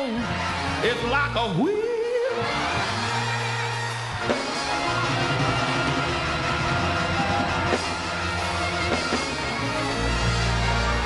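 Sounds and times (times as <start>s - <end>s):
gospel church band music: 0.0s - 11.0s.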